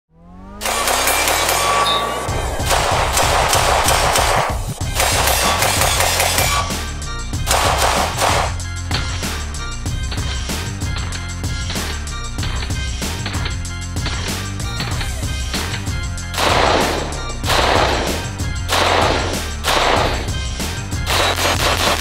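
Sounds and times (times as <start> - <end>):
gunfire: 0.6 - 6.8, 7.4 - 8.6, 16.3 - 20.4, 21.0 - 22.0
intro music with pounding beat: 0.6 - 22.0.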